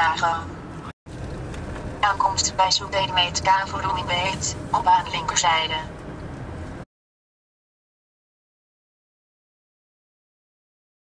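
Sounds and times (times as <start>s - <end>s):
steady noise: 0.0s - 6.8s
person speaking: 2.0s - 5.9s.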